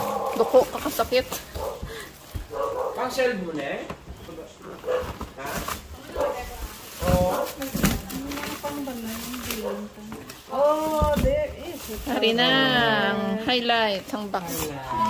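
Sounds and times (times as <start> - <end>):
plastic wrapping rustling: 0.0 - 12.9, 13.6 - 15.0
voices: 6.0 - 15.0
items knocking in cardboard box: 6.5 - 8.7, 10.8 - 11.6.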